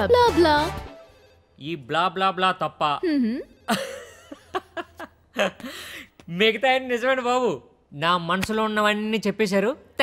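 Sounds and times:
film dialogue: 0:00.0 - 0:10.0.

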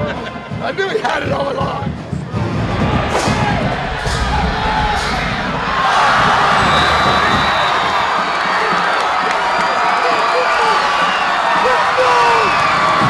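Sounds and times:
stadium crowd cheering: 0:02.2 - 0:13.0.

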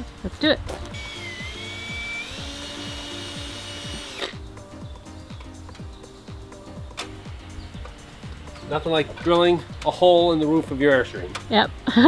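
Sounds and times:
background music: 0:00.0 - 0:12.0
cordless drill motor whine: 0:01.0 - 0:04.4.

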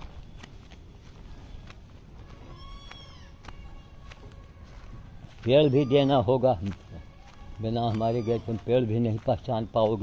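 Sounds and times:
low background noise: 0:00.0 - 0:10.0
high-pitched animal call: 0:02.5 - 0:03.4.

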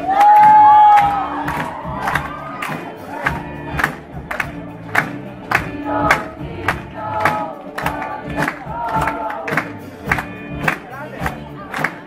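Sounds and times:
electric guitars and bass: 0:00.0 - 0:12.0
mixed group singing: 0:01.2 - 0:12.0.

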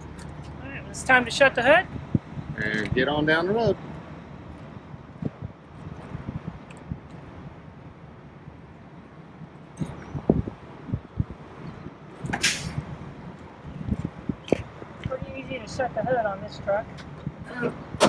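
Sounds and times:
loud short rush of hood closing: 0:12.3 - 0:12.8.

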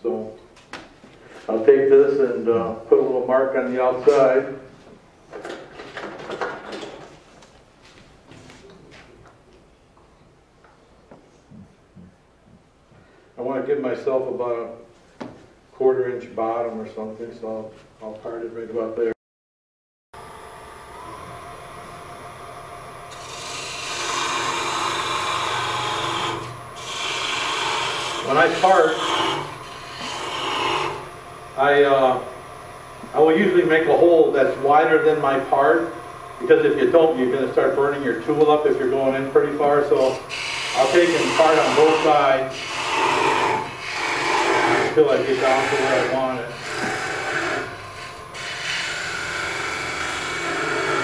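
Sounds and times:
wood lathe cutting groove: 0:23.1 - 0:51.0.

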